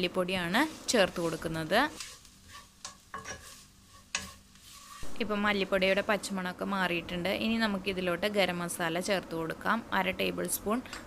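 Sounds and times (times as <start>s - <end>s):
faint frying sizzle: 0.0s - 11.0s
wooden spatula stirring in pot: 0.2s - 5.2s
sharp scrapes or knocks: 1.2s - 5.3s.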